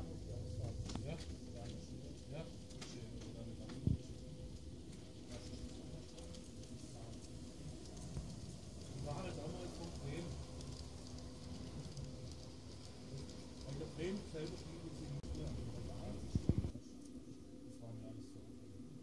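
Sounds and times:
model train rumbling along track: 0:00.0 - 0:16.7.

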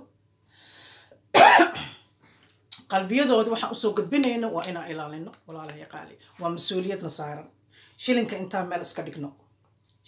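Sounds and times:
faint breath in: 0:00.4 - 0:01.2
woman coughing: 0:01.4 - 0:02.1.

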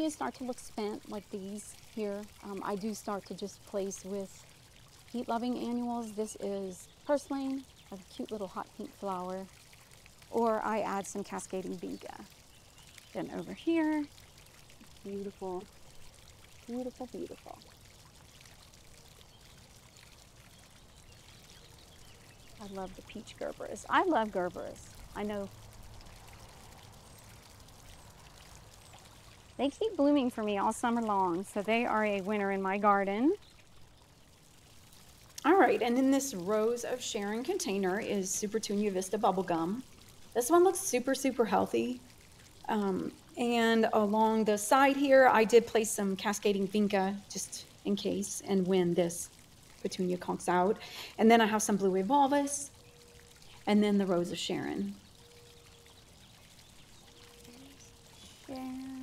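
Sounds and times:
faint outdoor hiss: 0:00.0 - 0:59.0
faint steady hum: 0:00.0 - 0:59.0.

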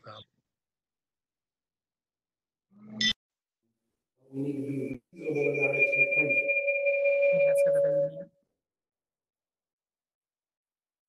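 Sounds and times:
low electronic tone: 0:04.7 - 0:08.4
high electronic tone: 0:05.2 - 0:08.4.

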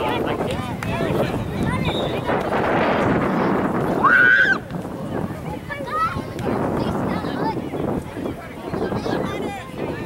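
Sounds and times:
noisy outdoor background: 0:00.0 - 0:10.0.

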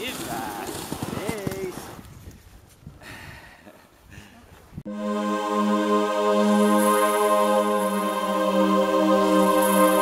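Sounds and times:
dog paws and sled on snow: 0:00.0 - 0:02.8.

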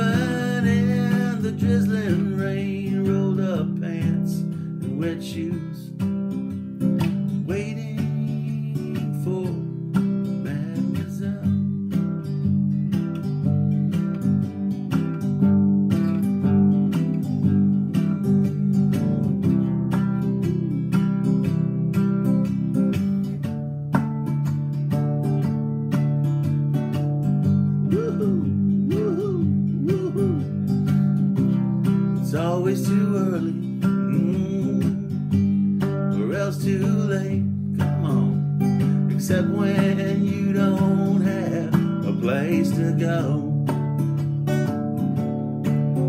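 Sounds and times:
acoustic guitar strumming: 0:00.0 - 0:46.0.

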